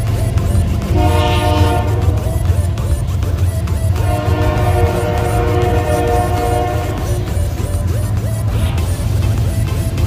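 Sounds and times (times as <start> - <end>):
train horn chord: 0.9 - 2.3, 4.0 - 7.3.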